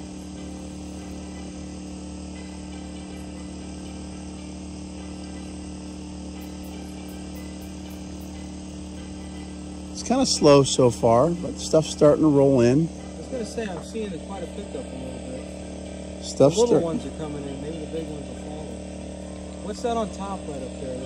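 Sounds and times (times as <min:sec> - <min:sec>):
insects chirping: 0:00.0 - 0:21.0
portable generator humming: 0:00.0 - 0:21.0.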